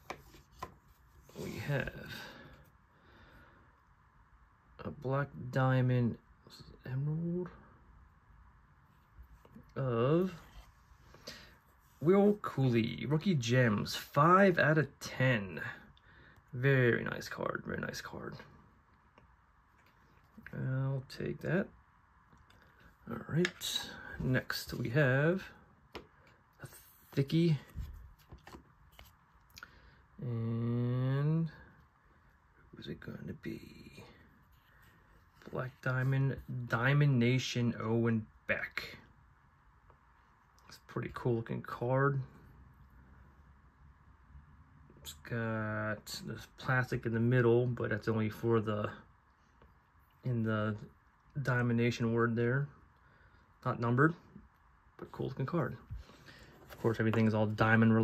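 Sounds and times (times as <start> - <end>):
card rustling in paper sleeve: 55.2 - 58.0.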